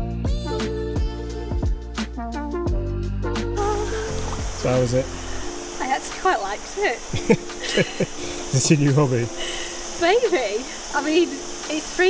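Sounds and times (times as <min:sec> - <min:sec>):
background music: 0:00.0 - 0:12.0
river water rushing: 0:03.7 - 0:12.0.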